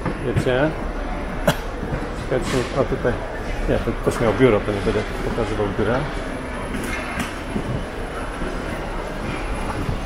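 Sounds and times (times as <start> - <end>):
busy hall noise: 0.0 - 10.0
suitcase rolling on tiled floor: 6.1 - 10.0.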